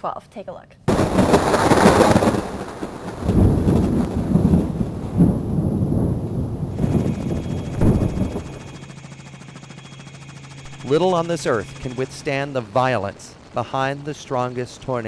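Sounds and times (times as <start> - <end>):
thunder rumbling and crackling: 0.9 - 8.9
steady low hum: 4.4 - 15.0.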